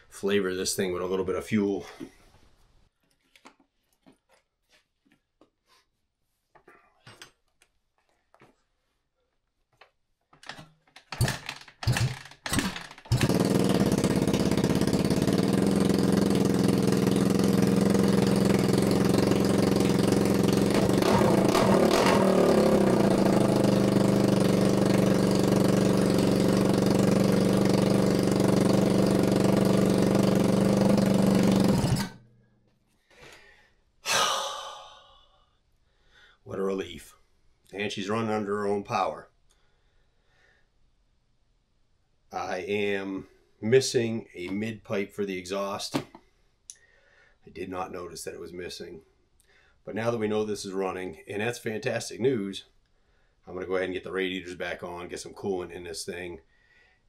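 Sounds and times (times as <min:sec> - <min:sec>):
motorcycle engine running: 0:11.2 - 0:32.2.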